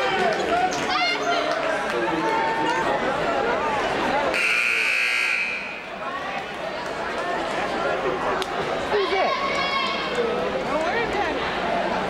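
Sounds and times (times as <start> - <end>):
crowd chatter: 0.0 - 12.0
scoreboard buzzer: 4.3 - 5.9.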